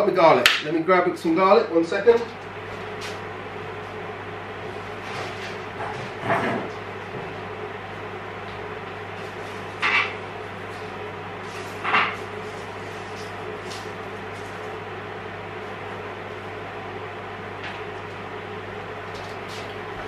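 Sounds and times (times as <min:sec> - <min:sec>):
steady hum: 0:00.0 - 0:20.0.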